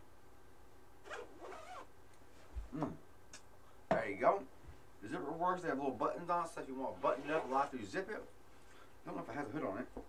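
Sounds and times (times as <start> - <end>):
jacket zipper rasp: 1.0 - 1.9, 7.0 - 7.8.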